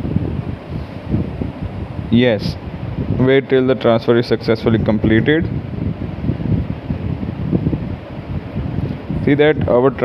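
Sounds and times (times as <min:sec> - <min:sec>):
low rumbling background noise: 0:00.0 - 0:10.0.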